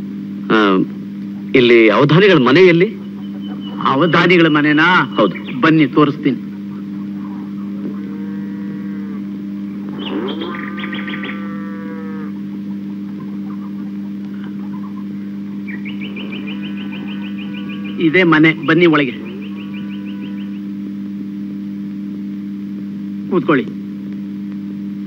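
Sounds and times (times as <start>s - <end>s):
steady low two-pitch hum: 0.0s - 25.0s
faint pulsing high-pitched sound: 1.5s - 23.6s
faint drawn-out pitched calls: 2.1s - 20.8s.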